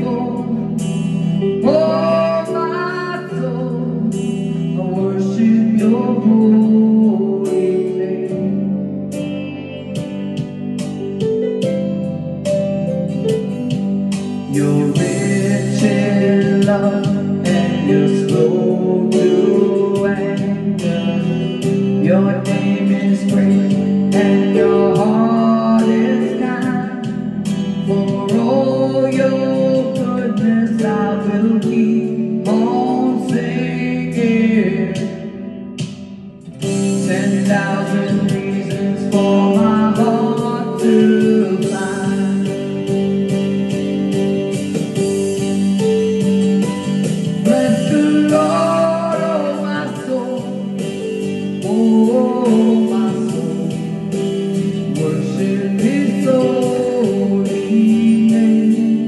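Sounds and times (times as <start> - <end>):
karaoke backing track with guitar: 0.0 - 59.0.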